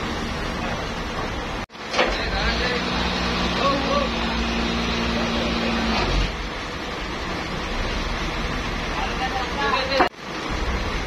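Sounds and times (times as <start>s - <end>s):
sawmill machinery humming: 0.0s - 9.4s
workers' voices: 0.5s - 6.6s, 8.6s - 10.2s.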